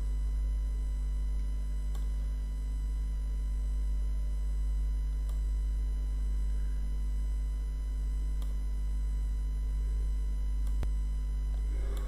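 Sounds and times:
faint steady tones: 0:00.0 - 0:12.0
low electrical mains hum: 0:00.0 - 0:12.0.

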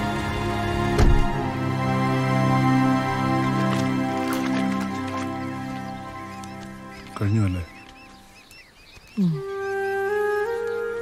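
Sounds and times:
flute music: 0:00.0 - 0:08.4, 0:09.2 - 0:11.0
soft background music: 0:00.0 - 0:11.0
faint chirps: 0:06.4 - 0:10.0
low wavering voice: 0:09.2 - 0:09.6.

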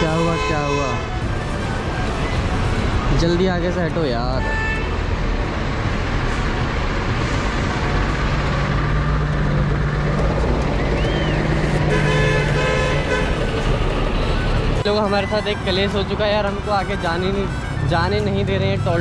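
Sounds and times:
diesel engines rumbling: 0:00.0 - 0:19.0.

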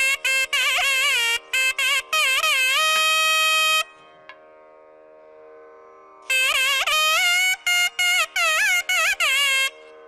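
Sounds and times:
double-reed pipe long note: 0:06.3 - 0:10.0.

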